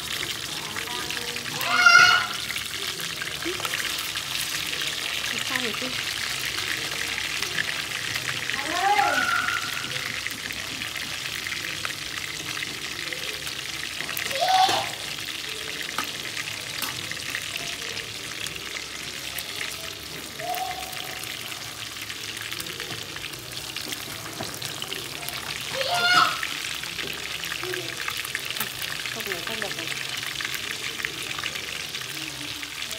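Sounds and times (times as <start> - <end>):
fish sizzling in hot oil: 0.0 - 32.9.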